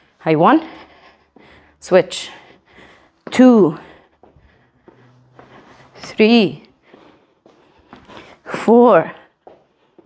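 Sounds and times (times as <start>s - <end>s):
sneakers tapping on rubber floor: 3.2s - 5.9s, 6.7s - 8.3s, 9.4s - 10.0s.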